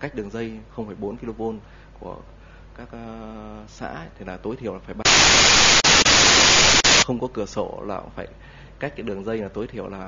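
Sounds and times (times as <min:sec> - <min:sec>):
loud static hiss: 0:05.0 - 0:07.0.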